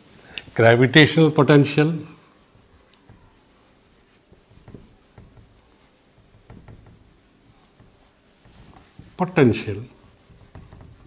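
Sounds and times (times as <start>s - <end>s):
marker writing on whiteboard: 1.5s - 11.0s.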